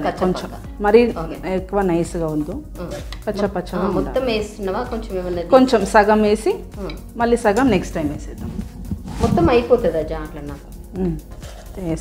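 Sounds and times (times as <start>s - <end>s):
woman speaking: 0.0s - 6.6s, 7.2s - 12.0s.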